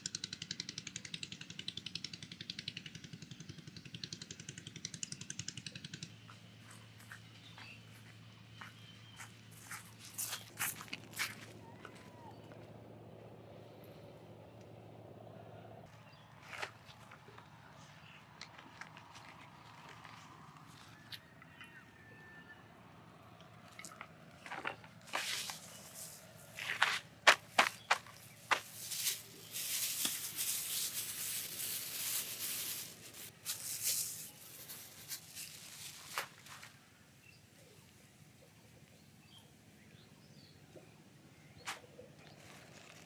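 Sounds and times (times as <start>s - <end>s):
footsteps on grass: 6.6s - 12.0s, 24.4s - 36.8s
plastic bag rustling: 25.0s - 36.7s.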